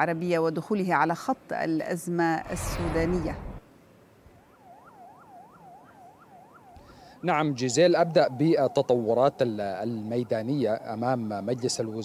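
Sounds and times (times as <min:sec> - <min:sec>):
faint yelping siren: 0:04.2 - 0:12.0.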